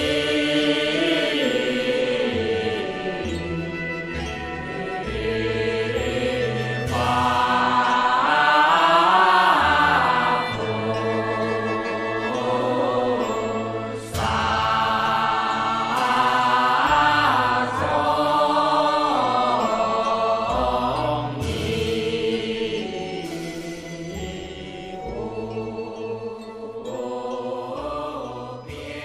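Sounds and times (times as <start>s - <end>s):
voices chanting: 0.0s - 23.5s, 24.1s - 29.0s.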